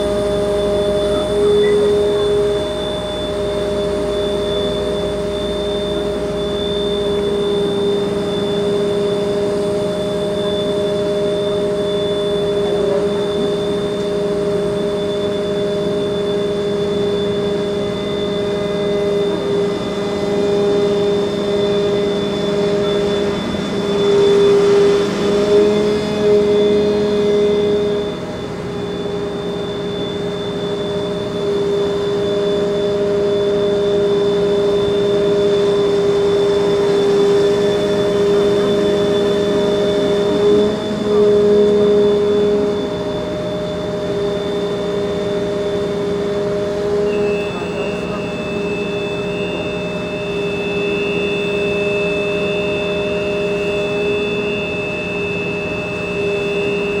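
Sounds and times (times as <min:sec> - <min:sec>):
fire truck engine droning: 0:00.0 - 0:57.0.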